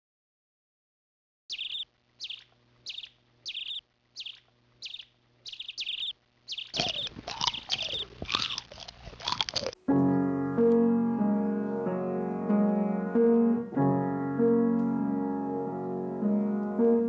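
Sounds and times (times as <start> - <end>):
mice squeaking: 1.5 - 8.7.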